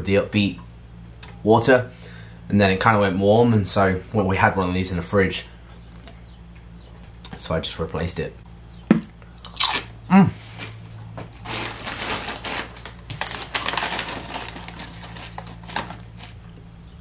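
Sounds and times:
crisps being chewed: 9.2 - 10.0, 11.4 - 16.4
person humming mm: 10.1 - 10.4.

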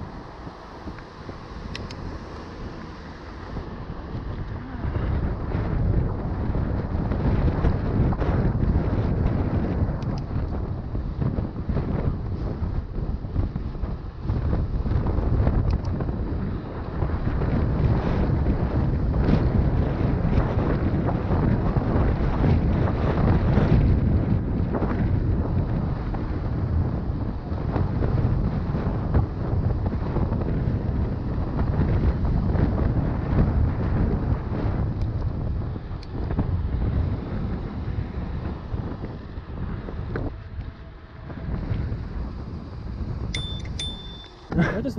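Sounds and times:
wind rushing over microphone: 0.0 - 44.9.

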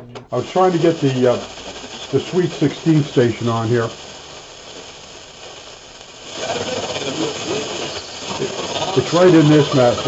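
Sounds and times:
faint radio station: 0.0 - 10.0
radio static and hiss: 0.2 - 10.0.

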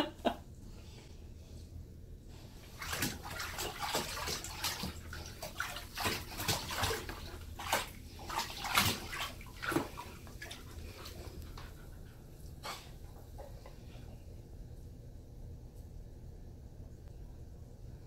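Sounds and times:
water splashing in bathtub: 2.4 - 12.0.

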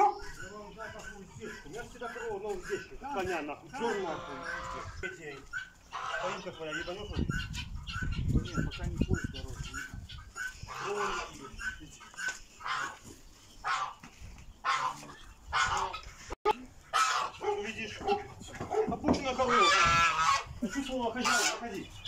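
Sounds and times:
poultry calling: 0.0 - 22.0.

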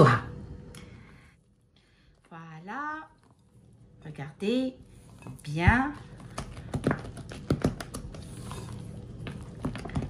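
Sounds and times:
spatula folding thick cream: 5.2 - 10.0.

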